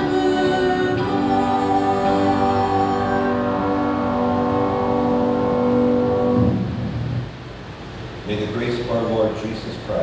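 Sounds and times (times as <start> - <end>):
held hymn chord: 0.0 - 6.9.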